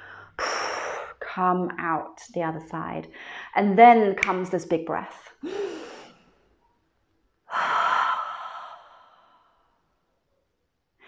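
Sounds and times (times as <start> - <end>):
woman sighing: 5.4 - 6.2.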